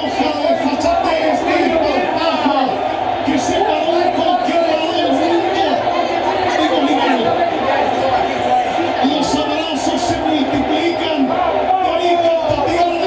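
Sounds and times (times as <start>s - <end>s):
group of people chattering: 0.0s - 13.0s.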